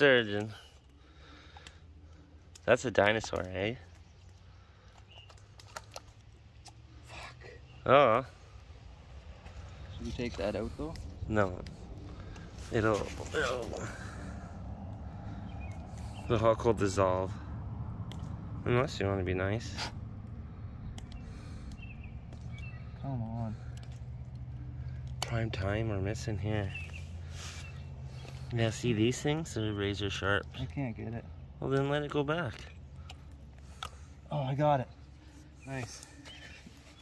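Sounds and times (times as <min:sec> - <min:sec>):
low steady rumble: 0:00.0 - 0:37.0.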